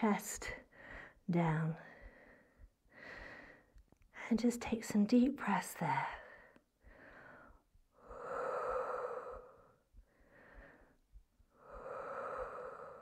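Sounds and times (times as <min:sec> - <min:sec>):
woman breathing deeply: 0:00.7 - 0:01.2, 0:01.9 - 0:03.8, 0:06.2 - 0:13.0.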